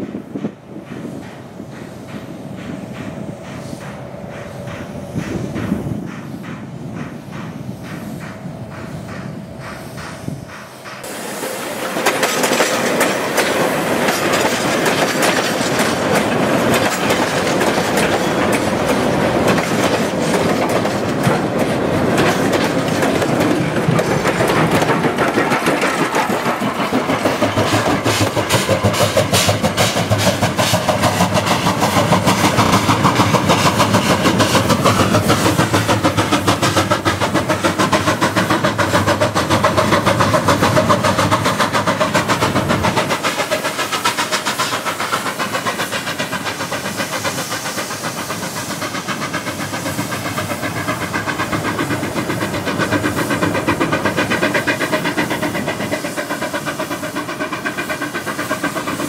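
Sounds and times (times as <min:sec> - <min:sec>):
train wheels clattering over rail joints: 0:00.0 - 0:59.0.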